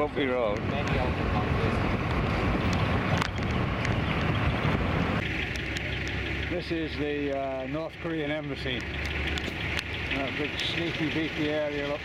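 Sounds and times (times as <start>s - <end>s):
car rumbling over bumpy road: 0.0s - 12.0s
wind on microphone: 0.6s - 5.3s.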